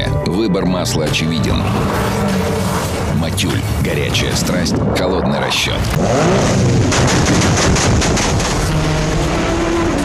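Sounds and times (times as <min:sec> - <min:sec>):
race car engine revving: 0:05.8 - 0:10.0.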